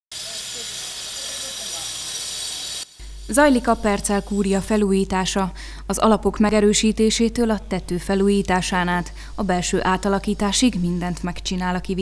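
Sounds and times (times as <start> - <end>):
angle grinder cutting: 0.1 - 4.4.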